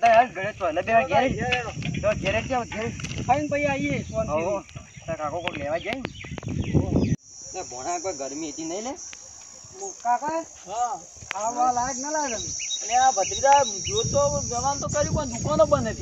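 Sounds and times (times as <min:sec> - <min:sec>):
insects trilling: 0:00.0 - 0:16.0
people's voices: 0:06.8 - 0:16.0.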